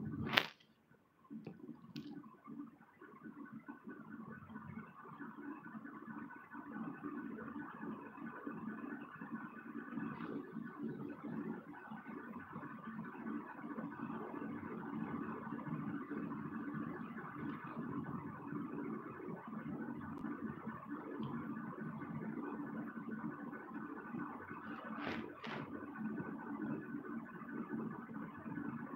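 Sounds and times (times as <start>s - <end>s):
steady mechanical hum: 0.0s - 28.9s.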